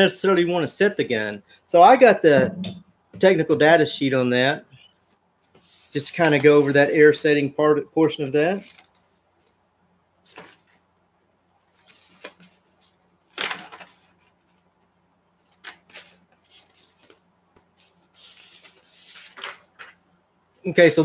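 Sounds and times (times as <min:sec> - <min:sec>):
paper sheets rustling: 0:10.2 - 0:10.8, 0:11.7 - 0:14.7, 0:15.4 - 0:20.0.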